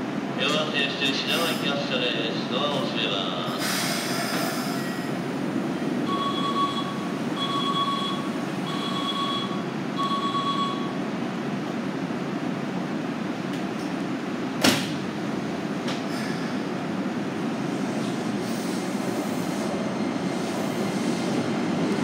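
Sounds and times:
train humming at platform: 0.0 - 22.0
two-tone door warning beeps: 6.0 - 11.0.

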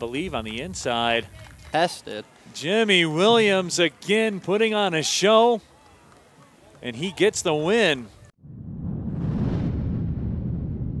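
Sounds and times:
deep rumbling sound effect: 8.4 - 11.0.

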